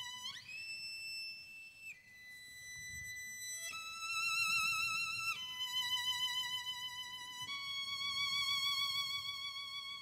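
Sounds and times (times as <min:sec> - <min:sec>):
solo violin holding notes: 0:00.0 - 0:10.0.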